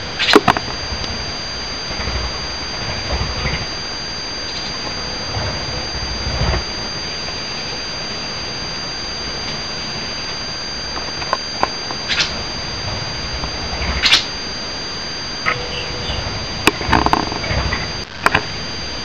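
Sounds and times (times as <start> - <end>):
constant hiss: 0.0 - 19.0
high-pitched two-tone whine: 0.0 - 19.0
low rumbles: 15.0 - 19.0.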